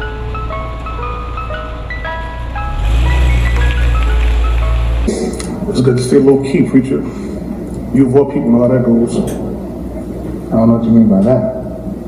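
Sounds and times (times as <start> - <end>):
ice cream truck jingle: 0.0 - 7.3
truck engine rumbling: 0.0 - 10.6.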